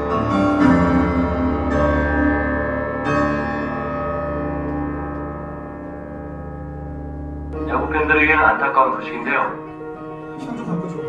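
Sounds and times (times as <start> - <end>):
piano chord ringing: 0.0 - 11.0.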